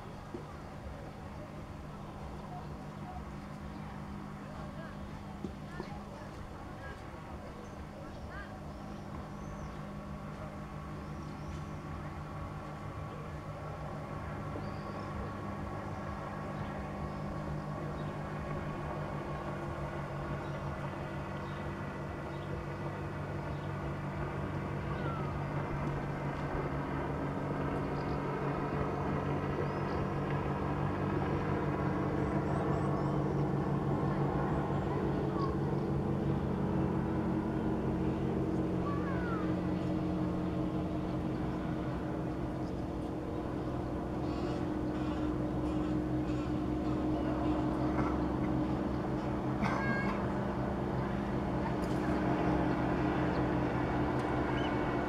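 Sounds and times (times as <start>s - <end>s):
motorboat engine running: 0.0s - 55.0s.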